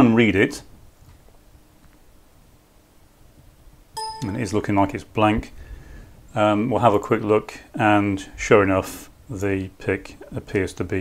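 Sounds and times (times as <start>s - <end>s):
faint steady hum: 0.8s - 11.0s
electronic beep: 4.0s - 4.8s.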